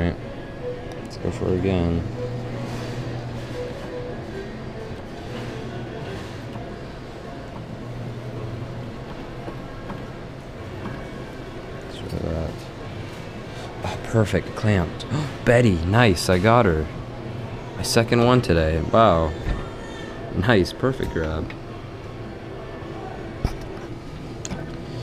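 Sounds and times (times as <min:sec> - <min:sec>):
electronic game machine music: 0:00.5 - 0:06.4.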